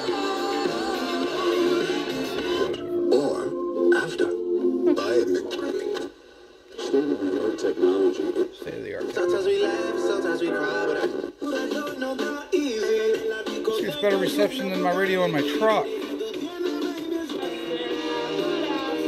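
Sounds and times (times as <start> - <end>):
song with vocals on radio: 0.0 - 19.0.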